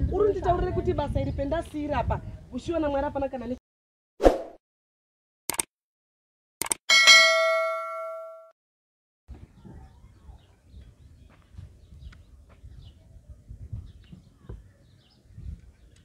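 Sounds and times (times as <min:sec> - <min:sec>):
sharp clicks: 0:05.5 - 0:05.7, 0:06.6 - 0:06.8
bright bell ding: 0:06.9 - 0:08.5
faint outdoor background noise: 0:09.3 - 0:16.0.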